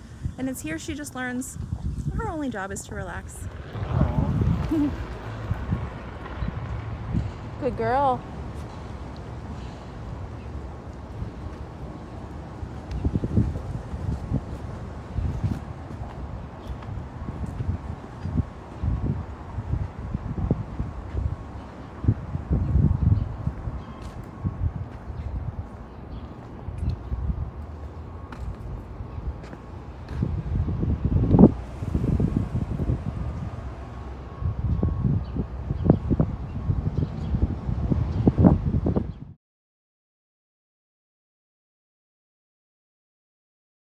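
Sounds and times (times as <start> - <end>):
wind buffeting microphone: 0.0 - 39.4.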